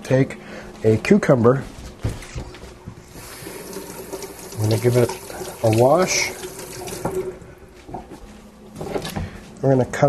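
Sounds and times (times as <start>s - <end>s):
tap water running into sink: 3.1s - 7.4s.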